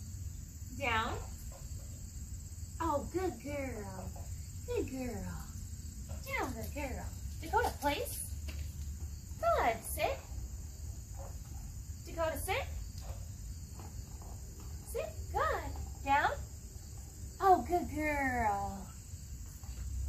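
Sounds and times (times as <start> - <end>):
crickets chirring: 0.0 - 20.0.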